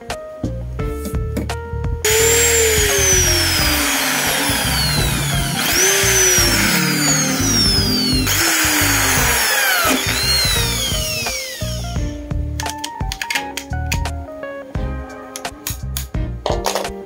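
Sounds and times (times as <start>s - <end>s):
background music: 0.0s - 17.0s
electric drill boring through plastic: 2.1s - 12.2s.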